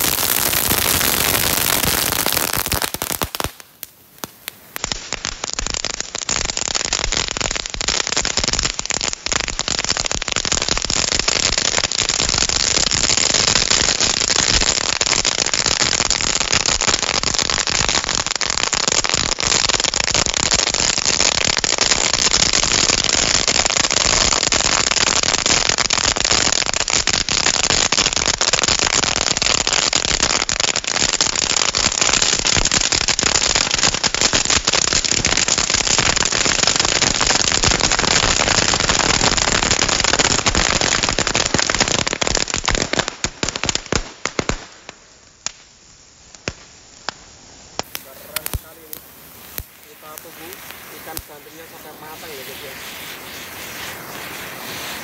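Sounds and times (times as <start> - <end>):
fireworks crackling pops: 0.0 - 55.0
fireworks fizzing hiss: 0.0 - 55.0.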